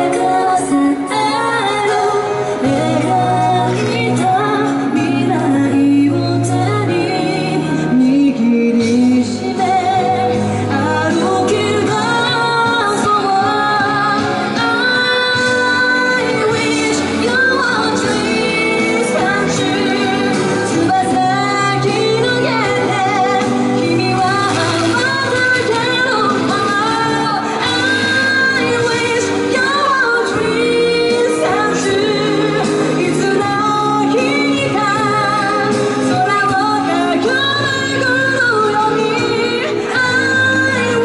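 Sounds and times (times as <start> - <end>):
instrumental accompaniment: 0.0 - 41.0
woman singing pop ballad: 0.0 - 41.0.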